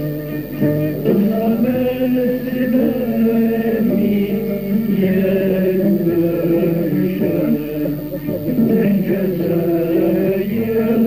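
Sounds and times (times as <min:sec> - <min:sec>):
man singing ornamented chant: 0:00.0 - 0:11.0.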